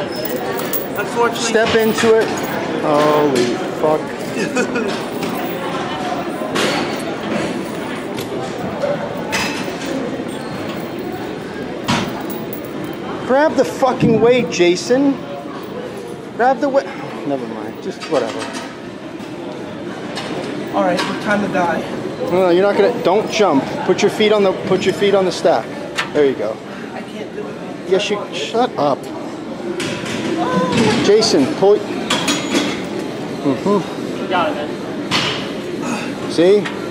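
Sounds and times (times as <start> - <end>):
gym background noise: 0.0 - 36.9
metal chain clink: 0.1 - 2.6, 5.0 - 13.0.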